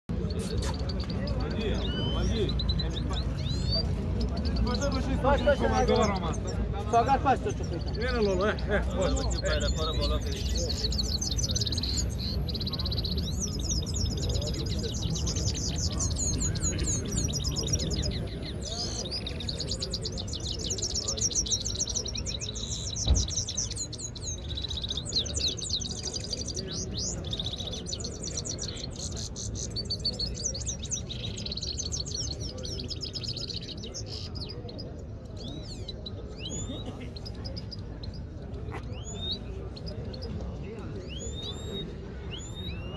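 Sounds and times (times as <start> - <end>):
finches singing twittering trills: 0.1 - 42.9
low crowd murmur: 0.1 - 42.9.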